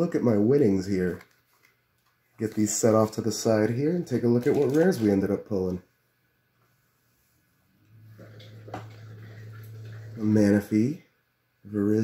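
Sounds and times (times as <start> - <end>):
cards rustling: 0.9 - 5.3
low hum: 7.7 - 10.4.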